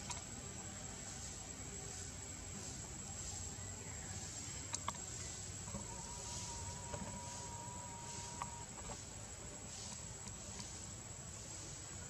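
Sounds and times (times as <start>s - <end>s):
insects droning: 0.0s - 12.0s
hiss: 6.2s - 12.0s.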